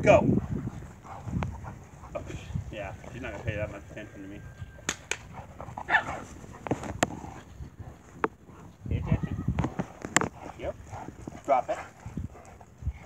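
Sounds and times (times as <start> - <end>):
sharp clicks: 4.8 - 5.3
dog barking: 5.8 - 6.3.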